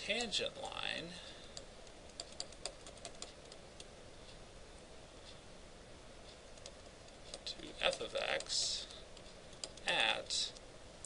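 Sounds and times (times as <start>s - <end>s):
man speaking: 0.0s - 1.3s, 7.4s - 9.0s, 9.8s - 10.6s.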